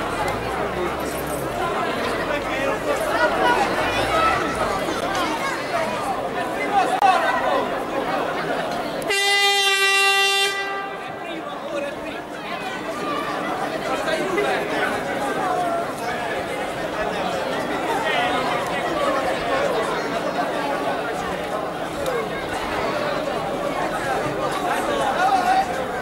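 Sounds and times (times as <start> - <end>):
crowd chatter: 0.0 - 26.0
horn blast: 9.1 - 11.3.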